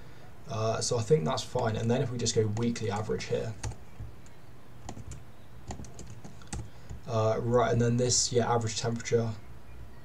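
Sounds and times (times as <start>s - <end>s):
computer keyboard keystrokes: 2.5s - 7.0s.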